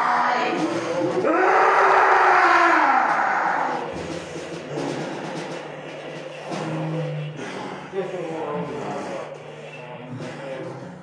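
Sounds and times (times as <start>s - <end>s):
harsh noise music: 0.0s - 11.0s.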